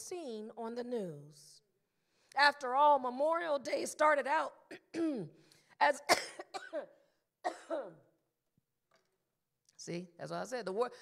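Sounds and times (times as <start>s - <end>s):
woman coughing: 4.7s - 5.4s, 6.0s - 8.1s.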